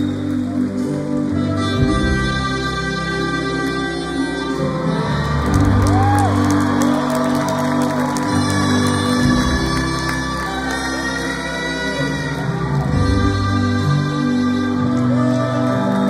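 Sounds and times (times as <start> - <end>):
live rock band in arena: 0.0 - 16.0.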